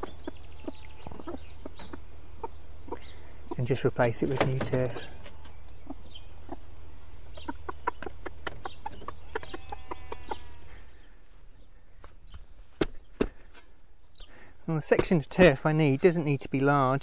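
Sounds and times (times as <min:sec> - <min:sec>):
hen clucking: 0:00.0 - 0:10.9
chicks peeping: 0:00.0 - 0:12.4.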